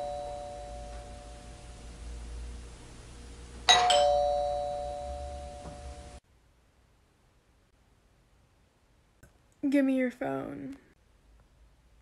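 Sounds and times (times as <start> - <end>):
two-tone doorbell chime: 0.0 - 1.9, 3.7 - 6.2.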